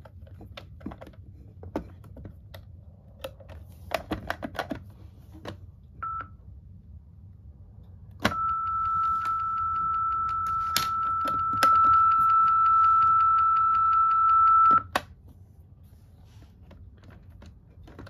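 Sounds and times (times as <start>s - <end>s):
short beep: 8.3s - 14.8s
steady high test tone: 8.3s - 14.8s.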